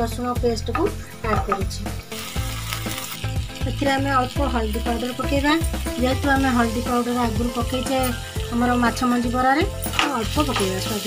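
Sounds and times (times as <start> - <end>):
background music: 0.0 - 11.0
masala sizzling in hot oil: 0.8 - 11.0.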